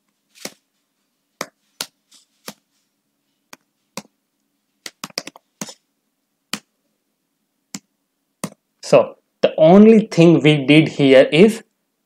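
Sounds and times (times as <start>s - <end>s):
computer keyboard keys clicking: 4.9s - 5.8s.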